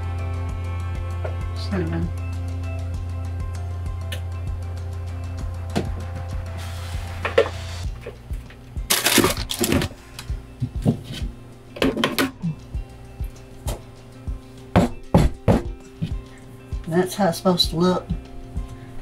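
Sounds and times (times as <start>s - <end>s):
background music: 0.0s - 19.0s.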